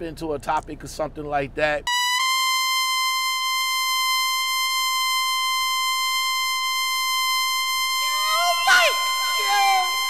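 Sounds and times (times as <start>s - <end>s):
high-pitched buzzy electronic tone: 1.9s - 10.0s.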